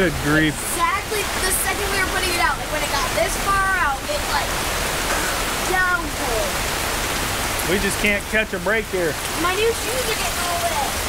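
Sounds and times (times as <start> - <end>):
heavy rain on camper and pavement: 0.0 - 11.0.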